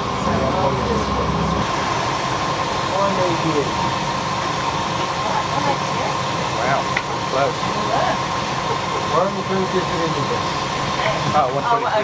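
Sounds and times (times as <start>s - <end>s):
faint voices: 0.0s - 1.8s, 2.8s - 3.9s, 5.0s - 12.0s
motor whining and rumbling: 0.0s - 12.0s.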